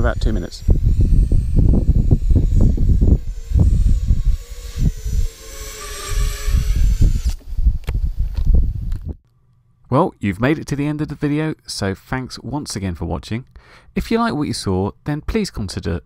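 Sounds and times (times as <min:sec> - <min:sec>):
drone motors whining: 0:00.0 - 0:09.1
wind buffeting on microphone: 0:00.0 - 0:09.2.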